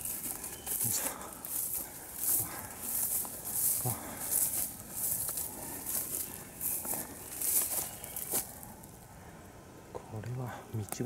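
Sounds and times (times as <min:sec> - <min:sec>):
footsteps swishing through grass: 0:00.0 - 0:08.7.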